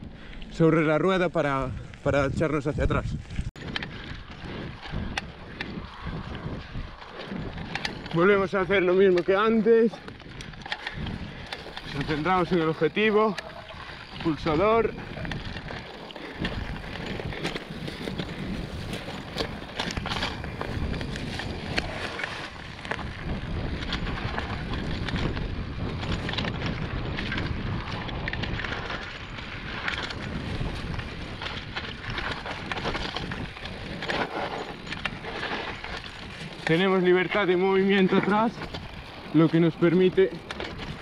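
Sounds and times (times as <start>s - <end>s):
bike tyres rolling over dirt: 0.0s - 41.0s
bike rattling and knocking: 0.8s - 41.0s.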